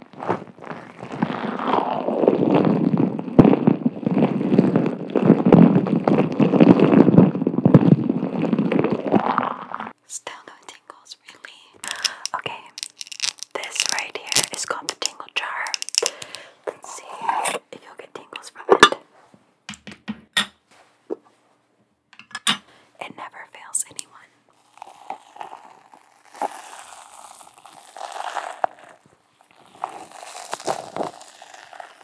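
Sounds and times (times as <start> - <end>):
nails rubbing squishy ball: 0.1 - 19.0, 23.6 - 32.0
soft whispering: 10.0 - 12.9, 13.5 - 16.0, 16.7 - 19.0, 23.0 - 24.4.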